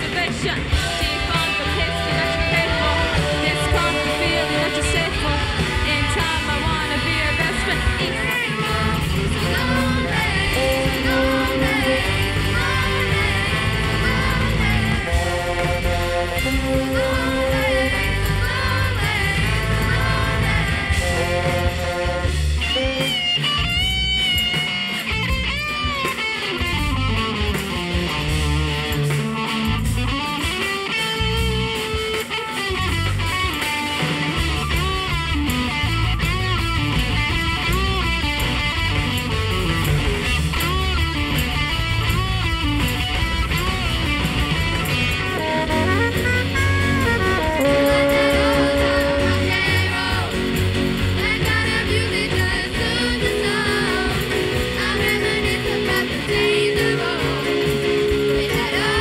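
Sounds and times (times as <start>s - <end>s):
bass: 0.0s - 59.0s
drums: 0.0s - 59.0s
electric guitar lead: 0.0s - 59.0s.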